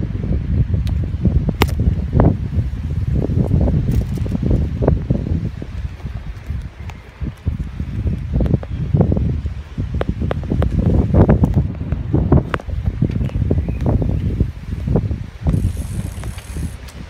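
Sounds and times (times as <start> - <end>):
wind buffeting microphone: 0.0 - 17.0
bicycle clicks and rattles: 3.8 - 4.8, 15.5 - 17.0.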